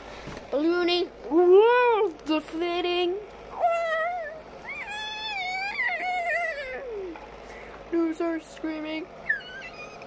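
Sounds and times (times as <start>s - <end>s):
child's high wavering cries: 3.6s - 7.2s.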